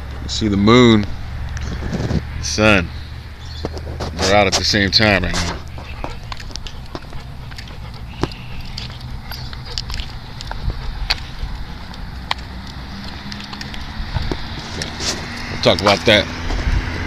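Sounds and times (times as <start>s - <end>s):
wind rumble on microphone: 1.0s - 7.2s, 8.8s - 17.0s
microphone handling clicks and crackles: 1.4s - 2.4s, 3.4s - 16.9s.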